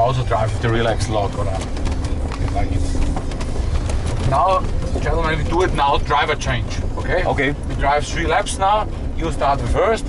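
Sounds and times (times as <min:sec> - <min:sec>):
car engine low rumble: 0:00.0 - 0:10.0.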